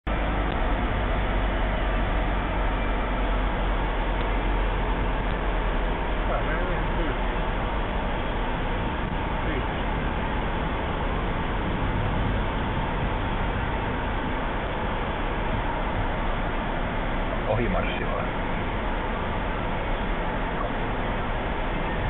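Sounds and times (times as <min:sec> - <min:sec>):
tractor engine: 0:00.0 - 0:22.0
hay rake machinery working: 0:00.1 - 0:22.0.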